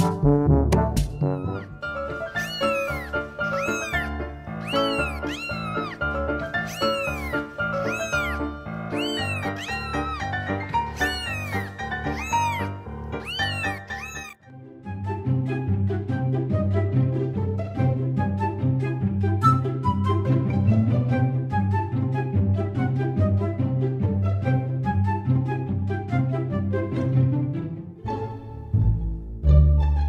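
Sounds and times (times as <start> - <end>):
background music: 0.0 - 30.0
cat meowing: 1.0 - 14.4.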